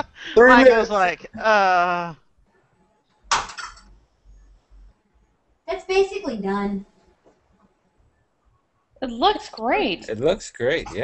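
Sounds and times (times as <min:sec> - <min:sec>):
kitchenware clattering: 0:03.3 - 0:03.9.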